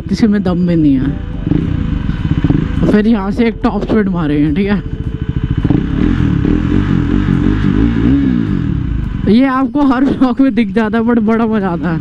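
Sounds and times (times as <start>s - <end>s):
motorcycle engine at low revs: 0.0s - 12.0s.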